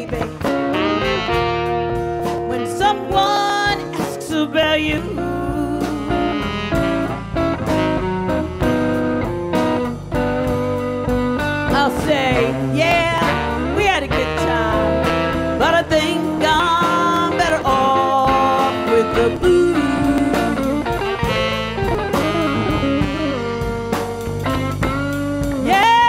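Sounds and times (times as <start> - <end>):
woman singing: 0.0 - 0.7, 2.5 - 6.5, 11.7 - 21.2, 25.4 - 26.0
blues band playing: 0.0 - 26.0.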